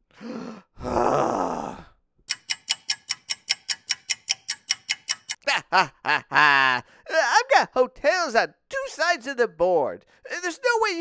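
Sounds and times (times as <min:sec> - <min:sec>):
loud groaning sigh: 0:00.2 - 0:02.0
fast clock ticking: 0:02.3 - 0:05.4.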